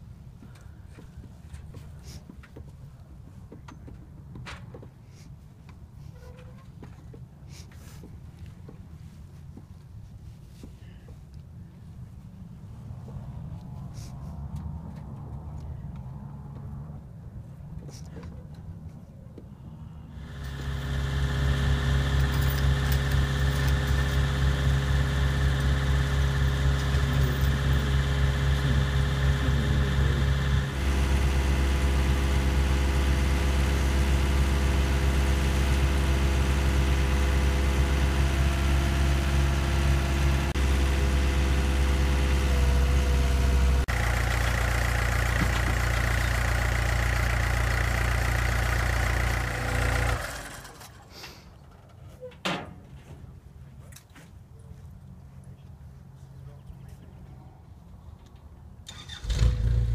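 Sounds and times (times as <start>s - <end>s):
mini excavator engine: 20.1s - 52.2s, 58.9s - 59.9s
dump cart engine: 20.1s - 52.3s, 58.9s - 59.9s.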